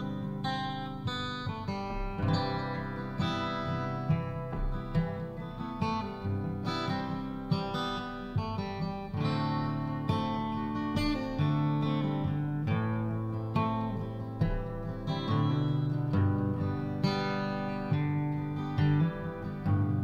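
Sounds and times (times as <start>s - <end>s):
picked acoustic guitar: 0.0s - 20.0s.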